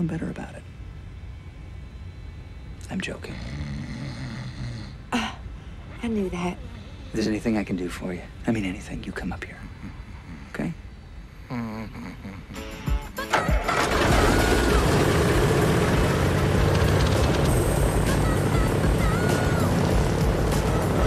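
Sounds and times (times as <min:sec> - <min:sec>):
film score music: 0:12.6 - 0:21.0
airliner engine running: 0:13.7 - 0:21.0.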